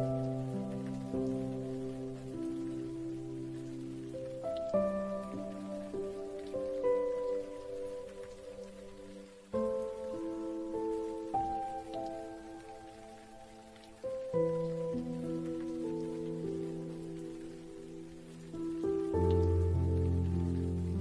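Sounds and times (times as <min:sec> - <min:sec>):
slow soft piano music: 0:00.0 - 0:21.0
steady rain: 0:00.0 - 0:21.0.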